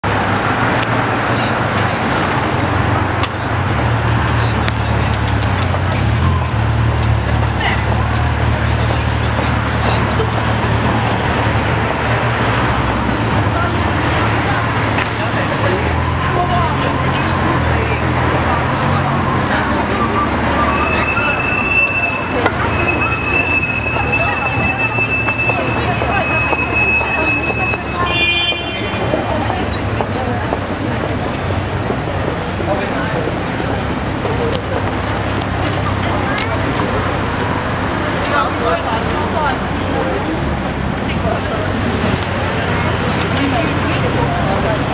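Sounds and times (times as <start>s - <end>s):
cars passing slowly: 0.0s - 44.9s
crowd walking and chatting: 0.0s - 44.9s
low traffic rumble: 0.0s - 44.9s
high-pitched squealing tone: 18.8s - 29.2s.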